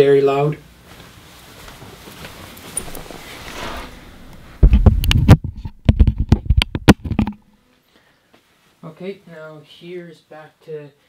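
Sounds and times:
microphone hiss: 0.0 - 11.0
microphone handling thumps: 1.6 - 7.5.

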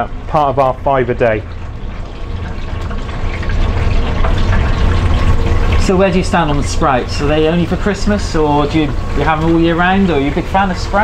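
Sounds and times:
low hum of frying range: 0.0 - 11.0
oil bubbling in fryer: 0.0 - 11.0.

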